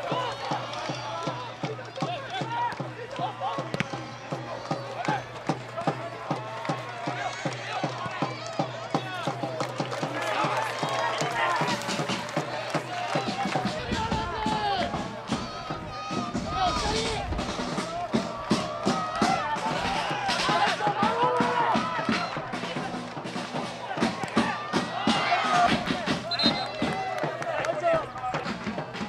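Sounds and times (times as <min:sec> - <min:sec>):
crowd chanting and singing: 0:00.0 - 0:29.0
drum beat: 0:00.0 - 0:29.0.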